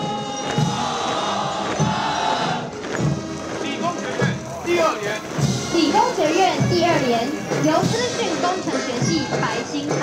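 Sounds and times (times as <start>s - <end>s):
crowd talking and calling out: 0.0s - 10.0s
music with a beat: 0.0s - 10.0s.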